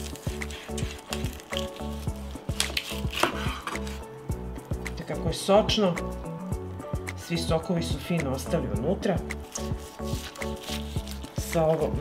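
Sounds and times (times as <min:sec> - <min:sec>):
knife sawing crackling pork skin: 0:00.0 - 0:04.0, 0:09.5 - 0:11.4
background music with steady beat: 0:00.0 - 0:12.0.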